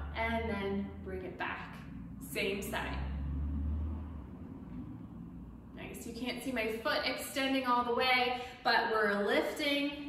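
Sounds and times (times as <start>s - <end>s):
low rumble: 0.0s - 8.2s.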